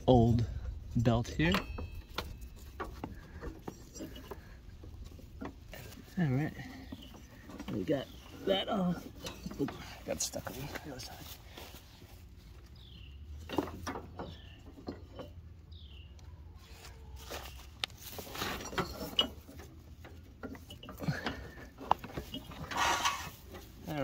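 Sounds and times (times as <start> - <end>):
rustling: 0.4 - 15.4, 16.6 - 24.0.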